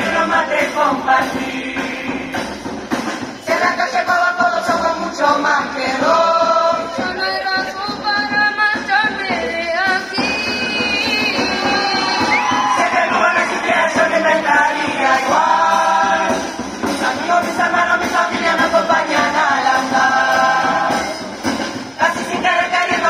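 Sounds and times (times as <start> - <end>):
children singing in chorus: 11.3 - 21.3, 22.0 - 23.0.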